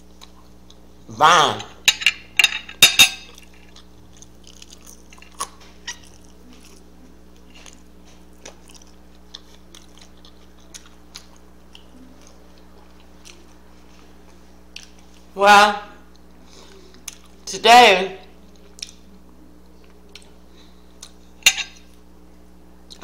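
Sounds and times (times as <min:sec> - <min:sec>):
low electrical hum: 0:00.0 - 0:23.0.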